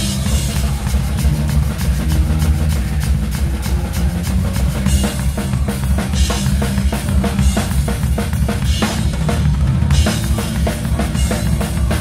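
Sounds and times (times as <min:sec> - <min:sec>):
metal band playing: 0:00.0 - 0:12.0.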